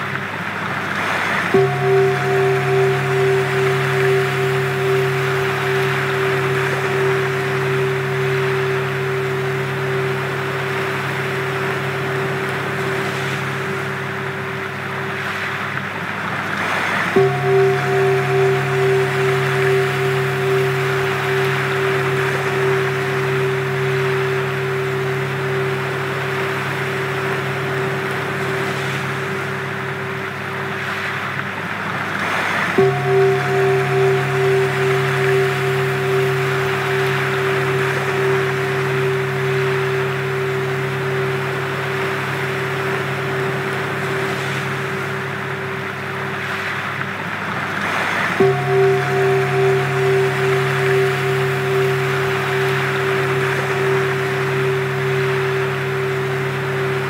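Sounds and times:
rushing wash like surf: 0.0 - 57.0
sustained pure tones: 0.0 - 57.0.

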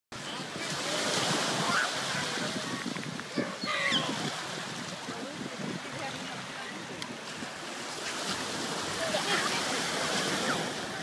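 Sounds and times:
small waves breaking on beach: 0.2 - 11.0.

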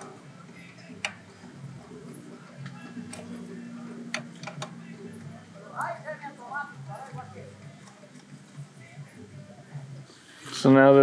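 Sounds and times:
low steady hum: 0.0 - 10.1.

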